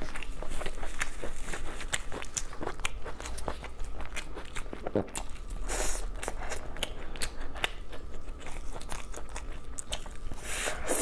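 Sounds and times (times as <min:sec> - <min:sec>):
chewing and biting meat: 0:00.0 - 0:10.4.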